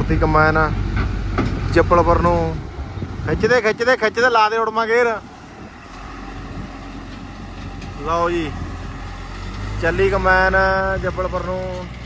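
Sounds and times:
diesel engine running: 0:00.0 - 0:12.0.

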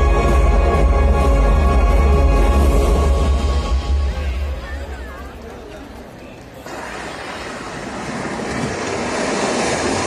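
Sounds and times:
loud rushing noise: 0:06.6 - 0:10.0.

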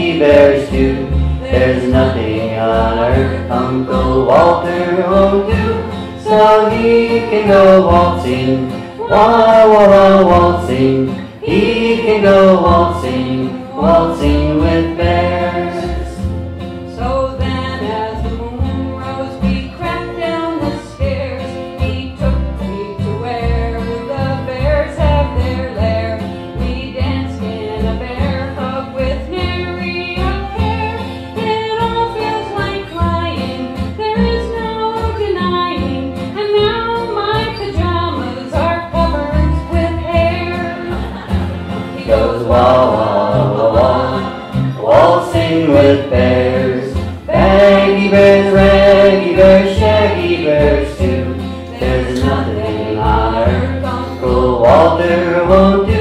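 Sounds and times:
banjo: 0:00.0 - 0:56.0
strummed acoustic guitars: 0:00.0 - 0:56.0
upright bass: 0:00.0 - 0:56.0.

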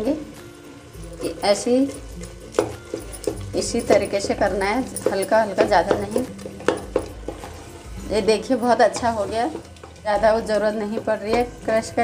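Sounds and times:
spoon mashing cooked carrots: 0:01.0 - 0:12.0
spoon knocking against metal pot: 0:02.5 - 0:07.5, 0:08.8 - 0:12.0.

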